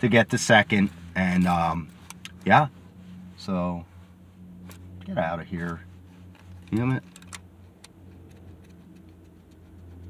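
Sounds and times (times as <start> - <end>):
car idling hum: 0.0 - 10.0.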